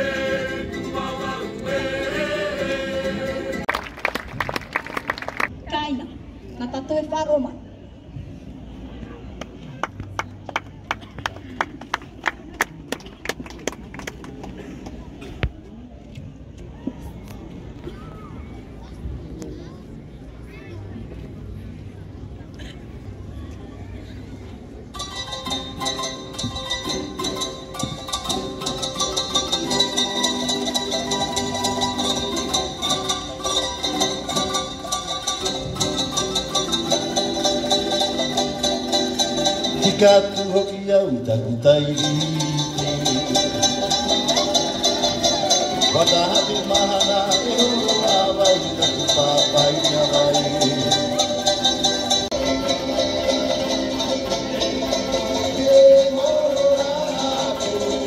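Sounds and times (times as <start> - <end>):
people singing: 0.0 - 3.7, 54.8 - 58.0
ukuleles and guitars strumming: 0.0 - 5.5, 24.8 - 58.0
crowd murmur: 0.0 - 58.0.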